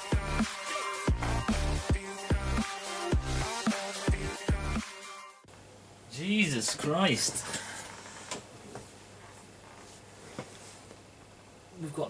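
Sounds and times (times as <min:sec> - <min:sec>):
low room hiss: 0:05.5 - 0:12.0.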